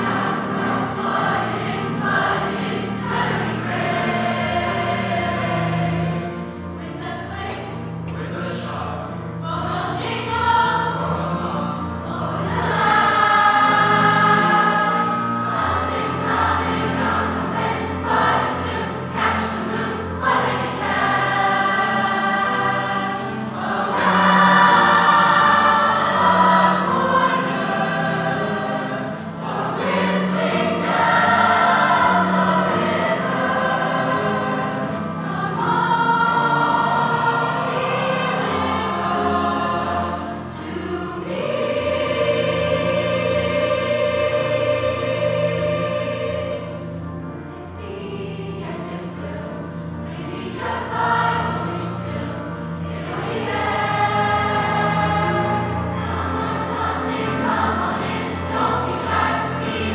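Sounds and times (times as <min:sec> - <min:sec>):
choir singing in harmony: 0:00.0 - 0:59.9
grand piano accompaniment: 0:00.0 - 0:59.9.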